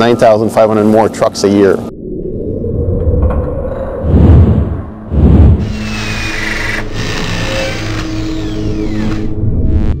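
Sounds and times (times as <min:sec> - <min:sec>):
high falling whines: 0:01.9 - 0:10.0
machine-like drone: 0:01.9 - 0:10.0.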